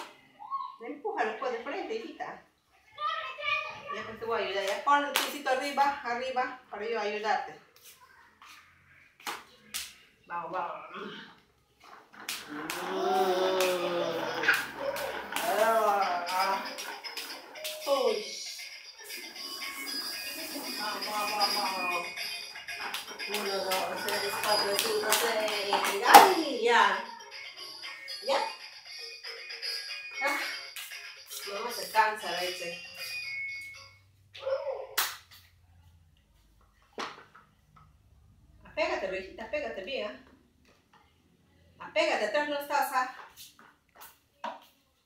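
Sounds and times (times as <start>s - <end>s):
short vocal sound: 12.4s - 14.5s
toddler making wordless sounds: 12.4s - 15.2s
electronic toy tune: 15.9s - 25.6s.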